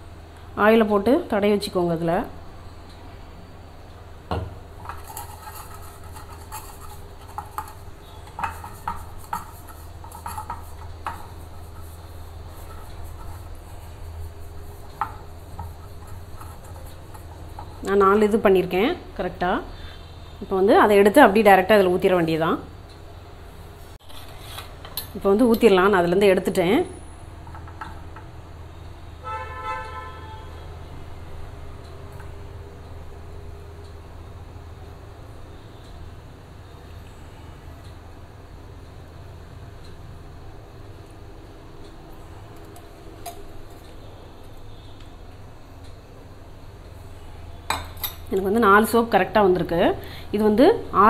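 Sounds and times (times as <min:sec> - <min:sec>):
steady low hum: 0:00.0 - 0:29.2.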